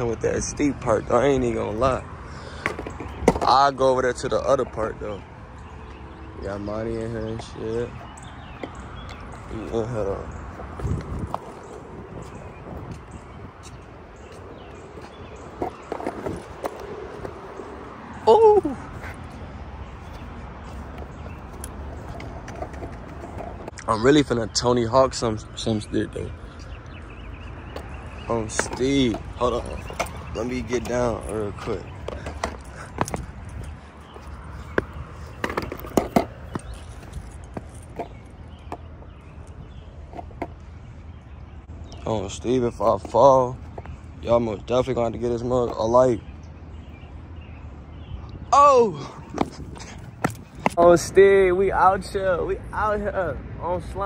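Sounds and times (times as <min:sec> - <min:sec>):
skateboard wheels rolling on concrete: 0:00.0 - 0:48.0, 0:48.6 - 0:53.2
skateboard clacks: 0:02.6 - 0:03.6, 0:14.9 - 0:17.6, 0:22.1 - 0:23.7, 0:34.7 - 0:38.8.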